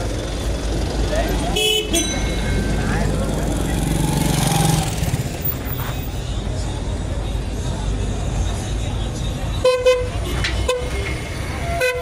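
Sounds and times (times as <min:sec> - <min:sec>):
passers-by voices: 0:00.0 - 0:12.0
traffic engines rumbling: 0:00.0 - 0:12.0
car horn toot: 0:01.6 - 0:02.2, 0:09.6 - 0:12.0.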